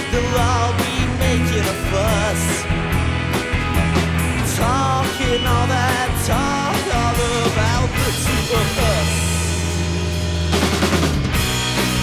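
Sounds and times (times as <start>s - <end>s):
drum kit: 0.0s - 12.0s
electric bass: 0.0s - 12.0s
electric guitar: 0.0s - 12.0s.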